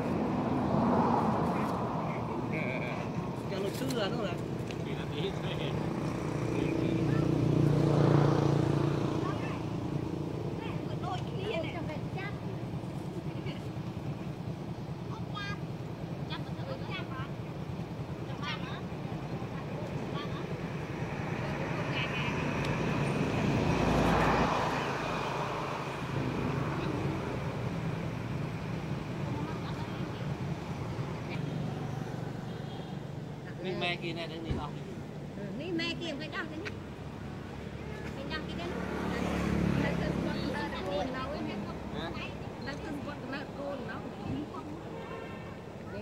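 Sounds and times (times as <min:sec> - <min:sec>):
traffic engine hum: 0:00.0 - 0:46.0.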